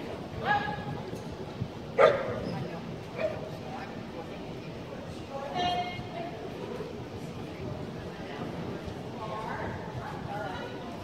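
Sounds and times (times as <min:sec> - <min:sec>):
murmur of people in hall: 0:00.0 - 0:11.0
dog barking: 0:02.0 - 0:02.4.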